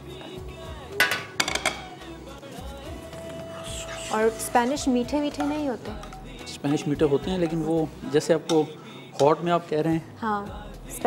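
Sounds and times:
background music: 0.0s - 11.0s
frying pan clattering on metal grate: 1.0s - 1.9s.

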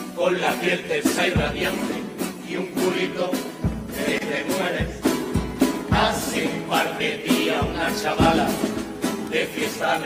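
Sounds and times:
guitars and percussion: 0.0s - 10.0s
male group singing: 0.0s - 10.0s
deep drum stroke: 1.1s - 9.8s.

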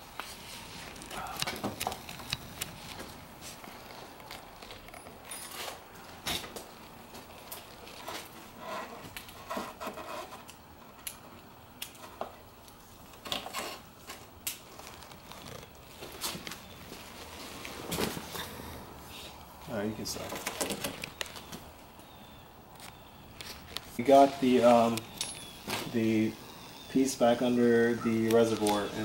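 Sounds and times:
gloves rustling: 0.0s - 10.6s, 11.9s - 29.0s.

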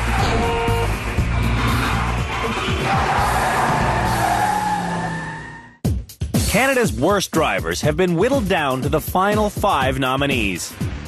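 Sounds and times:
theme music with strong bass: 0.0s - 4.9s, 5.8s - 11.0s
car engine: 0.0s - 5.8s.

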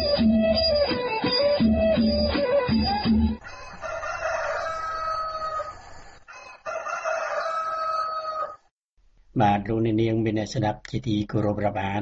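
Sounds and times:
rooster crowing: 3.4s - 8.7s.

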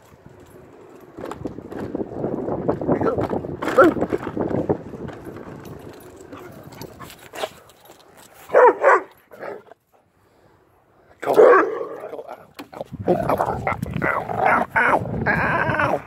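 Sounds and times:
dog barking: 8.5s - 9.7s, 11.2s - 12.0s.

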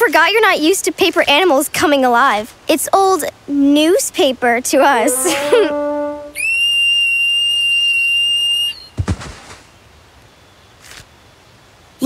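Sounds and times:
cartoon whistle-like screech: 5.2s - 8.9s
dull low thud: 9.0s - 9.6s.

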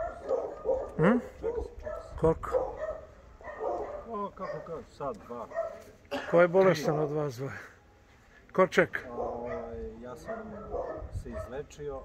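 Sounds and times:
dog barking: 0.0s - 7.2s, 9.1s - 11.6s.

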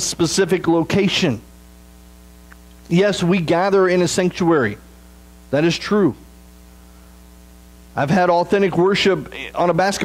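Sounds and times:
electrical mains hum: 0.0s - 10.0s
man speaking: 2.9s - 4.9s, 5.5s - 6.3s, 8.0s - 10.0s.

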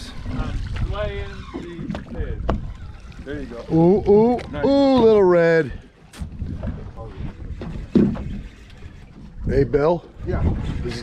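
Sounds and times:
low boat rumble: 0.0s - 11.0s
wind on microphone: 0.0s - 11.0s.

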